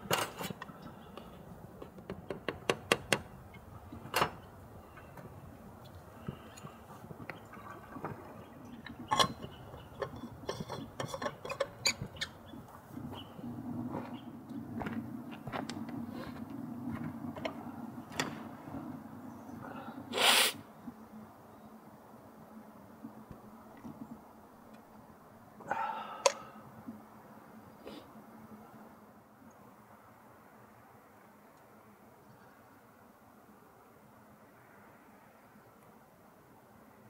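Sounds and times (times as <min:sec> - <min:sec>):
steady low hum: 0:00.0 - 0:29.9.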